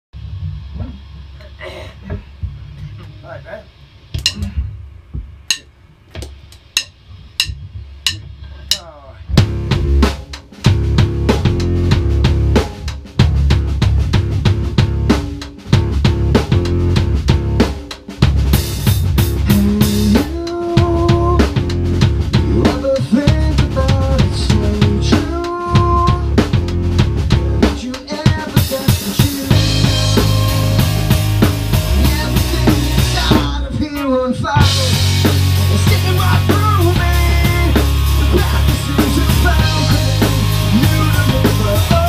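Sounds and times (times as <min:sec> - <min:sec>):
rock band playing: 0:04.2 - 0:04.6, 0:06.3 - 0:42.0.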